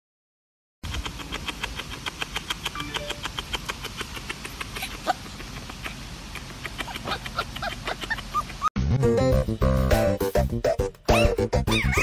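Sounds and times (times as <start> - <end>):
background music: 8.8 - 12.0
dog whining and yipping: 11.1 - 12.0.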